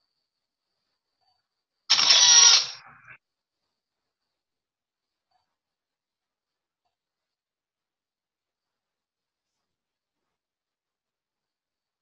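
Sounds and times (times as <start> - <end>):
camera shutter sound effect: 1.9 - 3.0.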